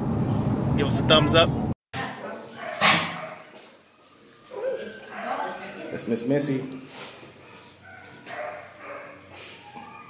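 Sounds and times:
small dog whining and yipping: 9.5s - 10.0s.

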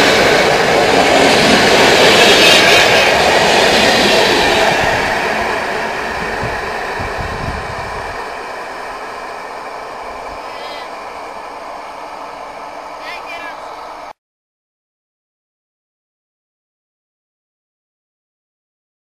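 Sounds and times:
train wheels rushing on rails: 0.0s - 14.2s.

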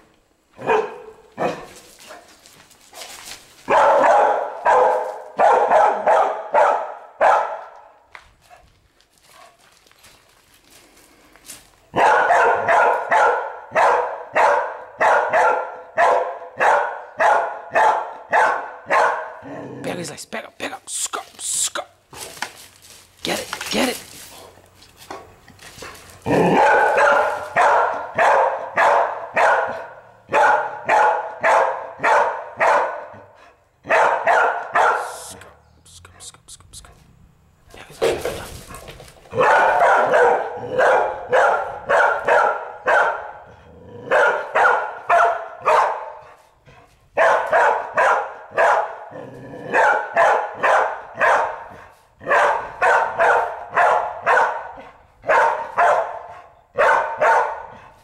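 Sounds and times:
dog barking: 0.6s - 2.3s, 3.6s - 8.6s, 11.9s - 19.6s, 25.1s - 35.6s, 38.0s - 46.5s, 47.1s - 58.0s.

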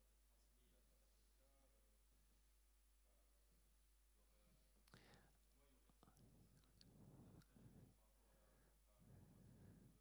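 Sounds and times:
whispered murmured talk: 0.2s - 10.0s.

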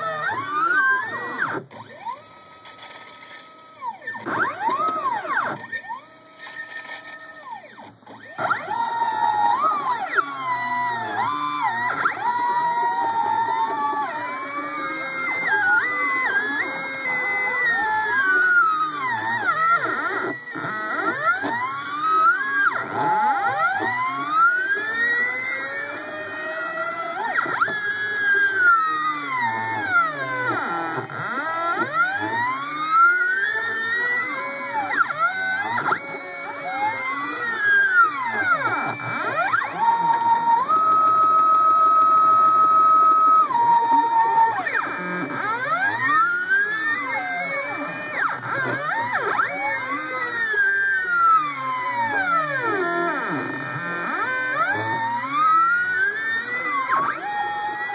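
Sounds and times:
stepper motors whining: 0.0s - 57.9s.

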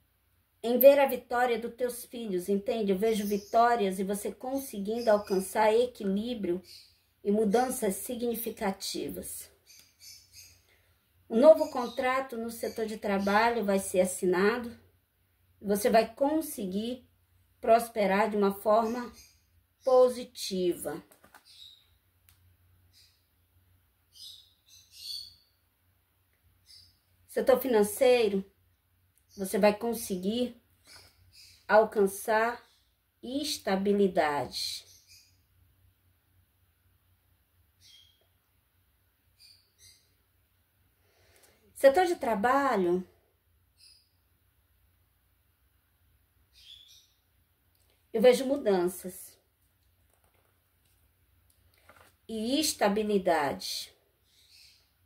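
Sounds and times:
cards rustling: 21.1s - 21.6s, 49.8s - 52.2s.

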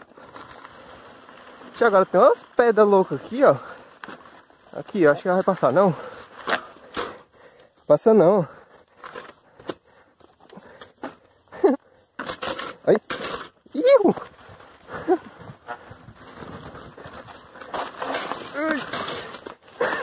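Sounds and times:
bicycle rattling on dirt path: 0.0s - 20.0s
man laughing: 11.5s - 11.9s, 14.9s - 15.4s, 19.7s - 20.0s
man exclaiming: 13.7s - 14.2s
bicycle knocking against rocks: 15.4s - 20.0s.

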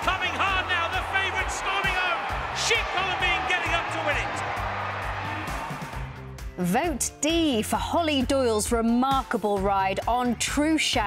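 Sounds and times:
race commentator speaking: 0.0s - 4.4s.

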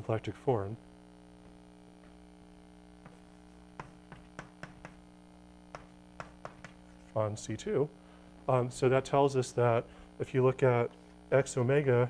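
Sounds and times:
steady electrical hum: 0.0s - 12.0s
chalk tapping on blackboard: 3.0s - 5.1s, 5.7s - 7.2s.

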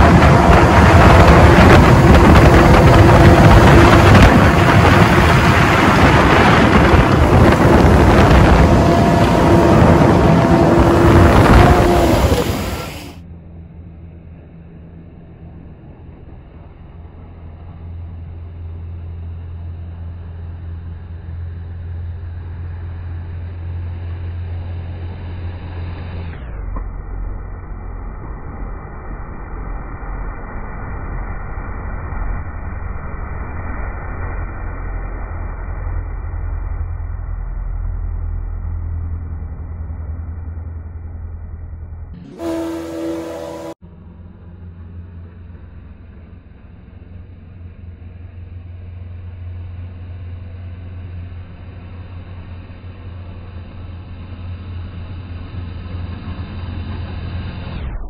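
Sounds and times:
steady tones: 0.0s - 13.2s, 35.1s - 43.8s
water rushing: 0.0s - 13.2s
jet boat motor droning: 0.0s - 58.0s.

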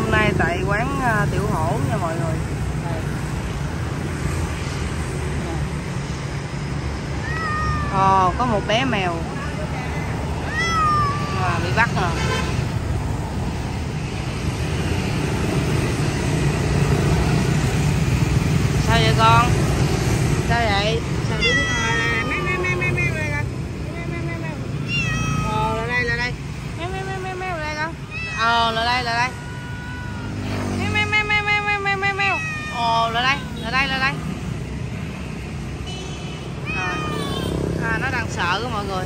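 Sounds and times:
low traffic hum: 0.0s - 39.0s
cat meowing: 7.2s - 8.4s, 9.4s - 12.0s, 21.2s - 26.3s, 27.2s - 30.9s, 31.7s - 34.2s, 36.6s - 37.7s.

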